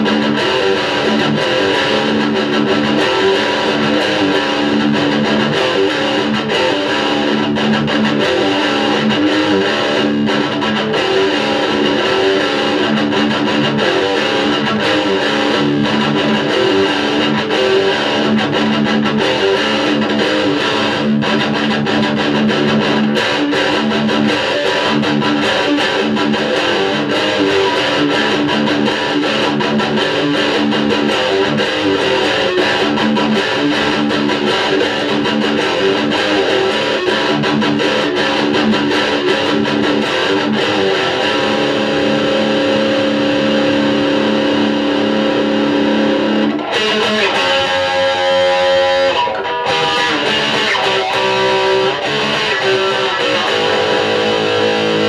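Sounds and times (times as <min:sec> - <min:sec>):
electric guitar heavy riffs: 0:00.0 - 0:55.0.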